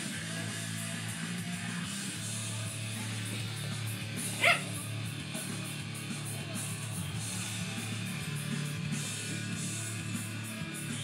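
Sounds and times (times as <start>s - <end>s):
heavy metal song: 0.0s - 11.0s
dog barking: 4.3s - 4.8s.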